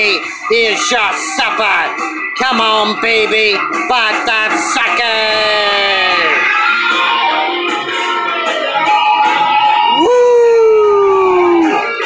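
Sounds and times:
hard rock music: 0.0s - 12.0s
man howling: 9.9s - 12.0s.

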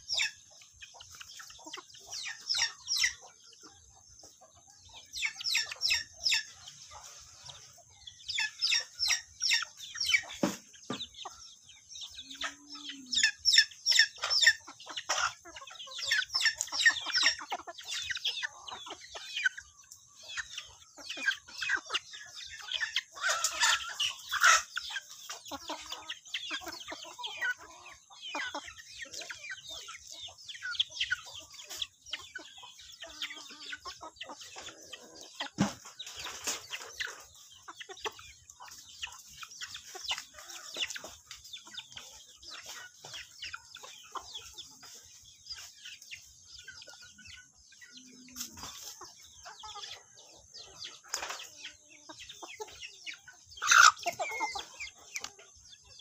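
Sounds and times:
chickens clucking: 0.0s - 56.0s.

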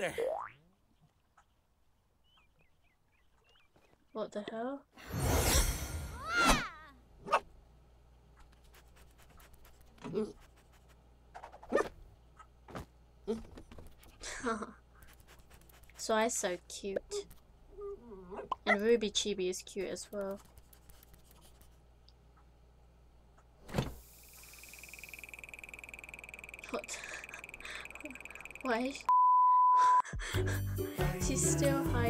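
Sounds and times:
faint rapid clicks: 20.0s - 22.2s, 25.1s - 29.1s
high pulsing tone: 24.3s - 28.7s
faint ticks: 24.6s - 28.9s.

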